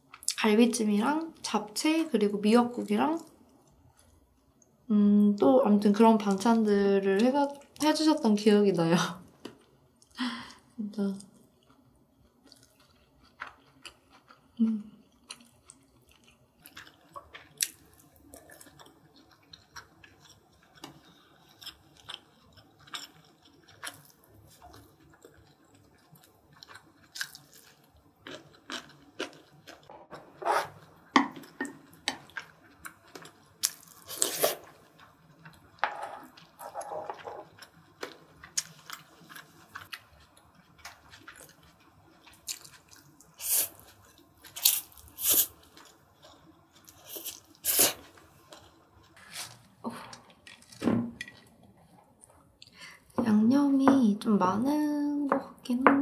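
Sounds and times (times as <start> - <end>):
close chewing with wet mouth sounds: 11.2 - 29.9, 30.8 - 49.7.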